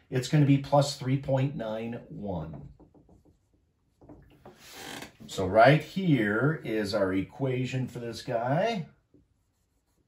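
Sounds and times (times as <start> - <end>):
marker strokes on whiteboard: 2.7 - 4.7, 9.0 - 10.0.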